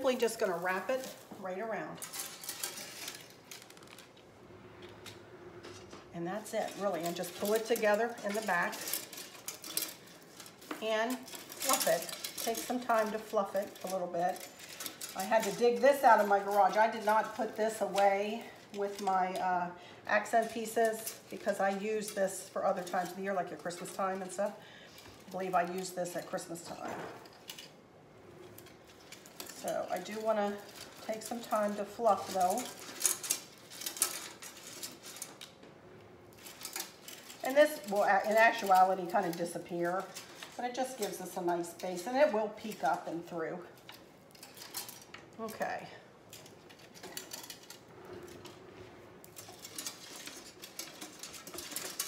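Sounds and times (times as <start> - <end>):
garland rustling and crackling: 0.0 - 4.9, 5.7 - 19.5
berry garland rustling and clicking: 0.0 - 27.8, 28.4 - 52.0.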